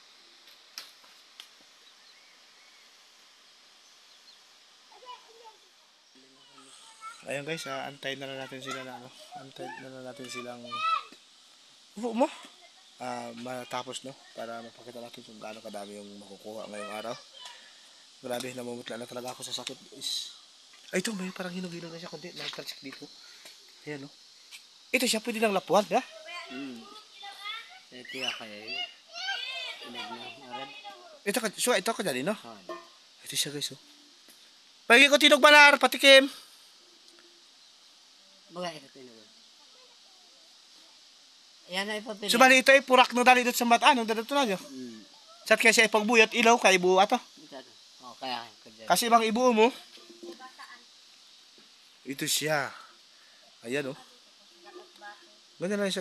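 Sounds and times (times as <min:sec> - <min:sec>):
high bird chirps: 0:28.0 - 0:28.9.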